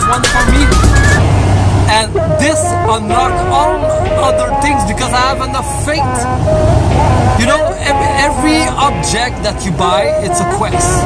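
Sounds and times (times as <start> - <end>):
man talking: 0.0 - 1.0, 1.9 - 6.3, 7.4 - 11.0
car cabin rumble: 0.0 - 11.0.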